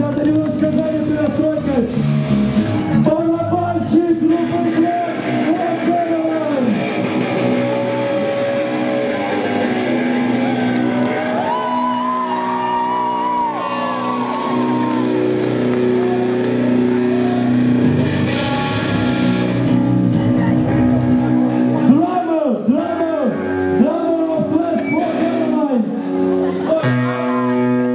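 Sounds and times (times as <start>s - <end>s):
electric guitars through amplifiers: 0.0s - 27.9s.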